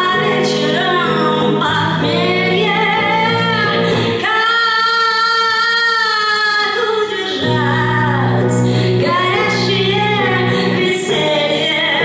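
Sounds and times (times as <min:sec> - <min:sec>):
electric guitar: 0:00.0 - 0:12.0
woman singing: 0:00.0 - 0:12.0.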